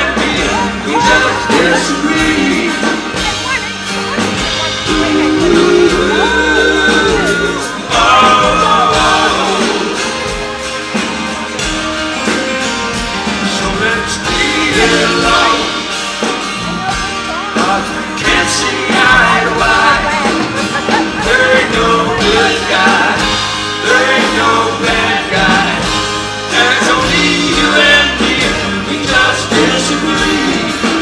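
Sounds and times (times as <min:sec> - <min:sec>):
bass: 0:00.0 - 0:31.0
drum kit with cymbals: 0:00.0 - 0:31.0
strummed acoustic guitar: 0:00.0 - 0:31.0.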